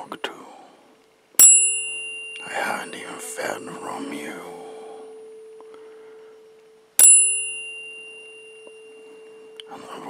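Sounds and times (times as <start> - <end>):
tuning fork humming: 1.4 - 10.0
tuning fork struck ding: 1.4 - 10.0.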